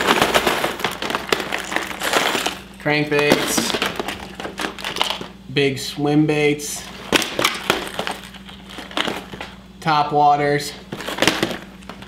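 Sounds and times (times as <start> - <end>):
lures rattling inside boxes: 0.0 - 5.3, 7.0 - 9.6, 10.9 - 12.0.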